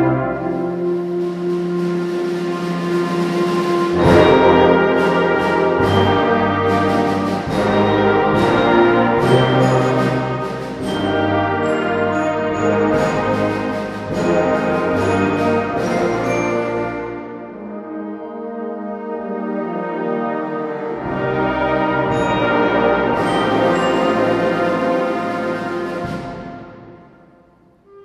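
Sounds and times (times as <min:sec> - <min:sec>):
percussion strikes: 0:00.0 - 0:17.8, 0:21.0 - 0:28.0
wind band playing: 0:00.0 - 0:28.0.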